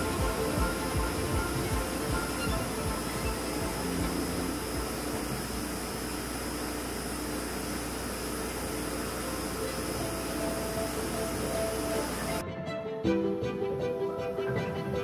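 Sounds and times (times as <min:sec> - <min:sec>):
faint held musical notes: 0:00.0 - 0:07.4, 0:08.2 - 0:15.0
outdoor noise hiss: 0:00.0 - 0:12.4.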